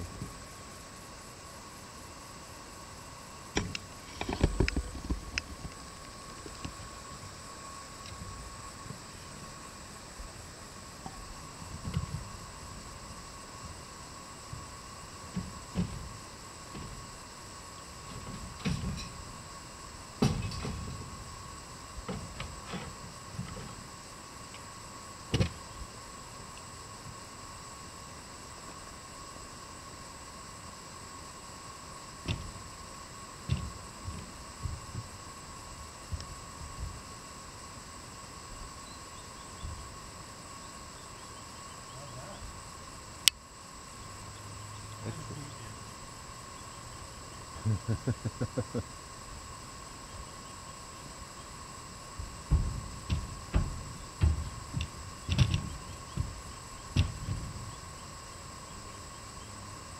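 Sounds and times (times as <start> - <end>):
faint outdoor hiss: 0.0 - 59.9
hollow knocks in horse float: 33.4 - 35.1, 52.2 - 57.7.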